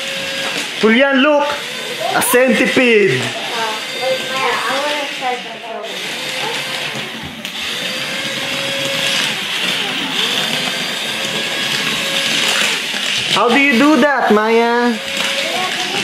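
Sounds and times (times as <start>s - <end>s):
toy motor and gears whirring: 0.0s - 16.0s.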